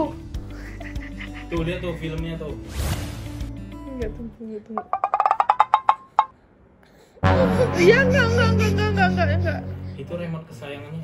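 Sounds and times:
wood-block-like ticks: 0:04.8 - 0:06.3.

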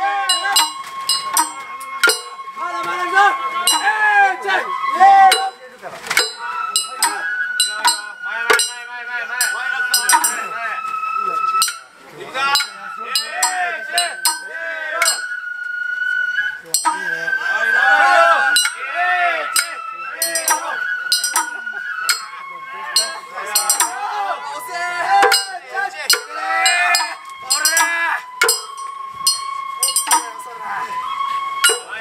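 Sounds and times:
men calling out: 0:00.0 - 0:10.6, 0:11.6 - 0:15.3, 0:16.6 - 0:31.0
men's voices: 0:00.0 - 0:15.2, 0:16.6 - 0:28.8
long held high note: 0:00.0 - 0:32.0
sharp metallic strikes: 0:00.3 - 0:02.4, 0:03.7 - 0:04.0, 0:05.3 - 0:10.5, 0:11.6 - 0:15.4, 0:16.7 - 0:17.2, 0:18.6 - 0:18.8, 0:19.6 - 0:22.4, 0:23.0 - 0:24.0, 0:25.2 - 0:30.4, 0:31.6 - 0:32.0
sharp ringing clacks: 0:00.3 - 0:02.4, 0:03.7 - 0:03.9, 0:05.3 - 0:10.5, 0:11.6 - 0:11.9, 0:12.5 - 0:15.4, 0:16.7 - 0:17.2, 0:18.6 - 0:18.8, 0:19.5 - 0:22.4, 0:23.0 - 0:24.0, 0:25.2 - 0:30.4, 0:31.6 - 0:32.0
thin steady tone: 0:06.2 - 0:10.6, 0:16.7 - 0:17.3, 0:19.5 - 0:24.0, 0:25.2 - 0:30.5.

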